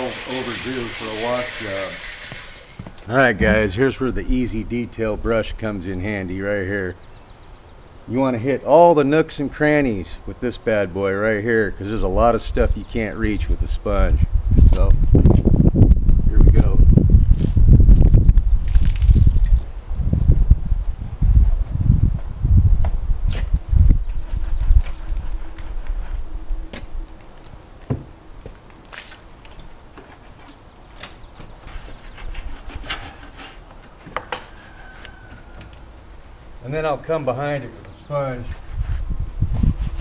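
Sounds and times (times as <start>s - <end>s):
brush sloshing in water bucket: 0.0s - 2.6s.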